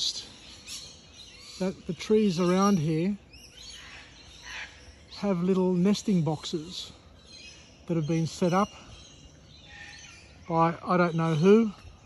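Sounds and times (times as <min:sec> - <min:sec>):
faint bird chirps: 0:00.0 - 0:12.0
low outdoor background hum: 0:00.0 - 0:12.0.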